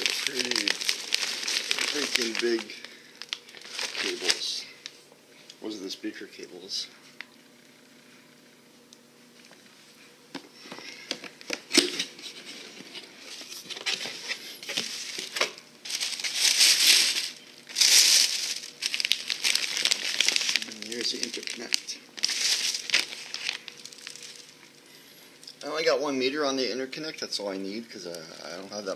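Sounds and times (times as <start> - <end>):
plastic bag crinkling: 0.0 - 5.0, 12.5 - 25.1.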